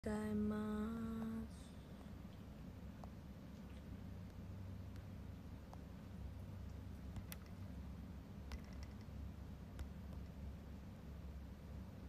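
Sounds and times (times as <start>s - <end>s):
woman humming: 0.0s - 1.8s.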